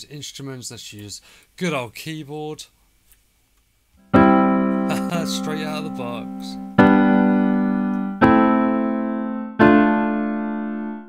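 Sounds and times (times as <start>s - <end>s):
piano chords ringing: 4.0s - 11.0s.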